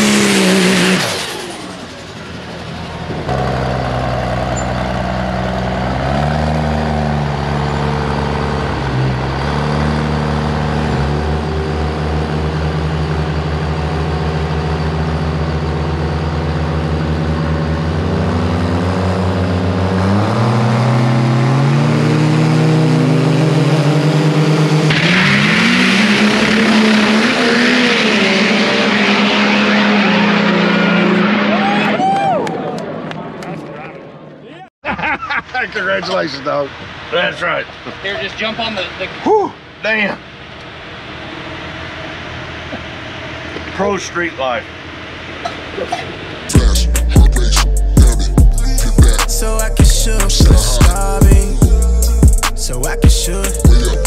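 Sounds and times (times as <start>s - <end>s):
diesel truck engine revving: 0.0s - 34.4s, 35.6s - 54.0s.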